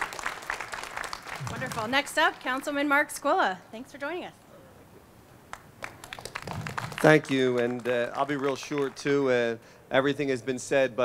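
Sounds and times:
light applause: 0:00.0 - 0:02.8, 0:05.5 - 0:09.6.

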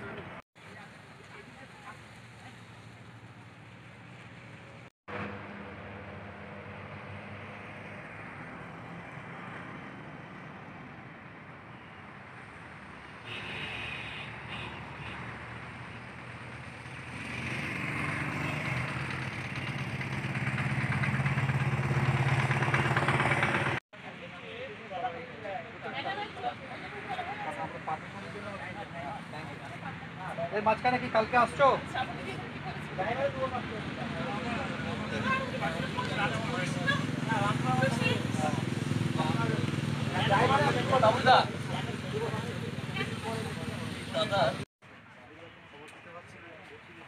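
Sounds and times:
roadside traffic: 0:00.0 - 0:47.0
motor vehicle engine running: 0:17.9 - 0:23.8.

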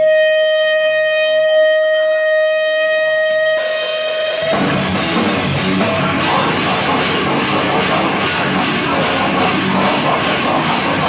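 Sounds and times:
electric guitar feedback tone: 0:00.0 - 0:11.0.

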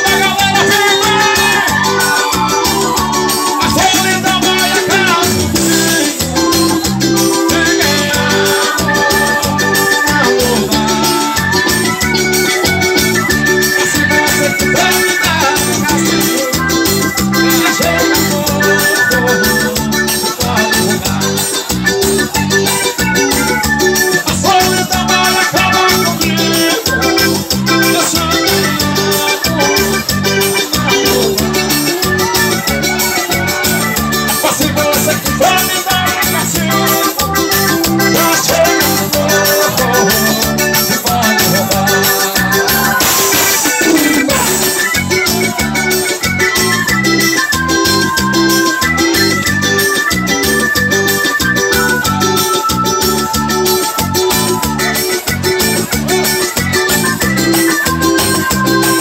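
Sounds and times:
live dance music: 0:00.0 - 0:59.0.

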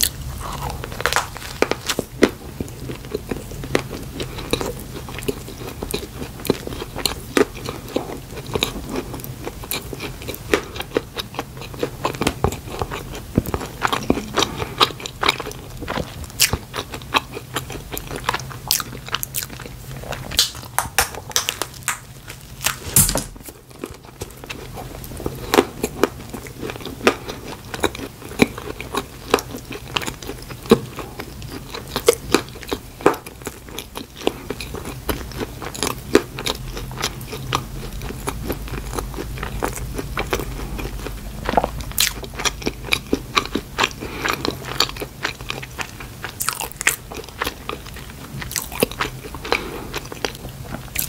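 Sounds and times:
close chewing mouth sounds: 0:00.0 - 0:51.0.

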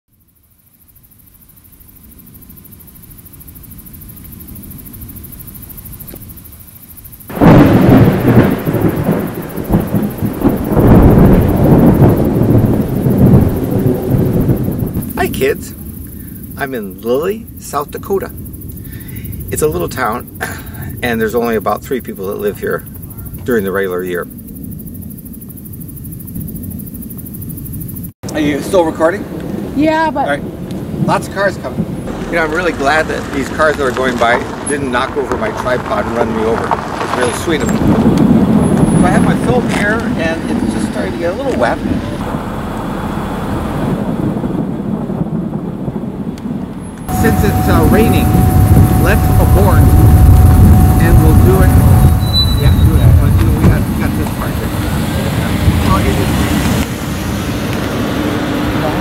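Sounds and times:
low thunder rumble: 0:01.1 - 0:59.0
loud thunderclap: 0:07.3 - 0:17.6, 0:28.4 - 0:59.0.

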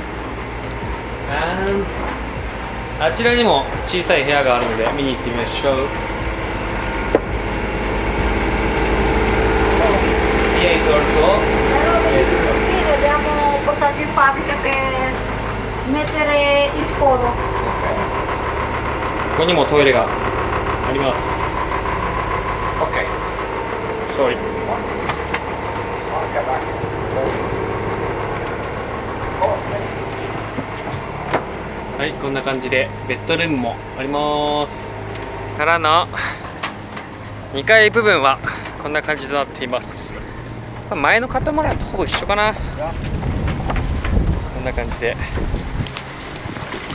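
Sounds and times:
boat engine humming: 0:00.0 - 0:46.9.

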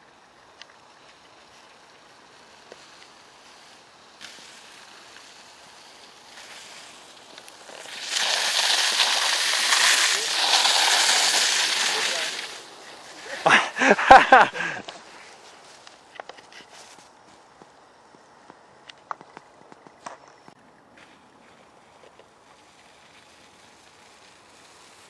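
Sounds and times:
wheels spraying through slush: 0:00.0 - 0:15.8, 0:21.1 - 0:25.0.

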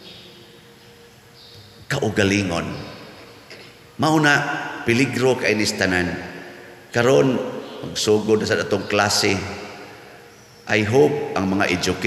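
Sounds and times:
background hiss: 0:00.0 - 0:12.0
faint hum: 0:00.0 - 0:12.0
man speaking: 0:01.9 - 0:03.0, 0:04.0 - 0:09.6, 0:10.7 - 0:12.0.

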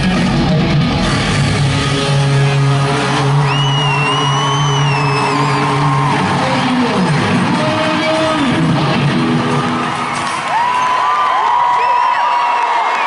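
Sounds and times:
live rock band: 0:00.0 - 0:11.1.

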